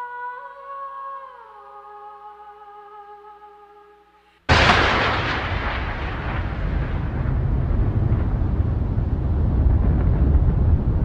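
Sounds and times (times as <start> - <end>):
cinematic explosion with deep rumble: 4.5 - 11.0.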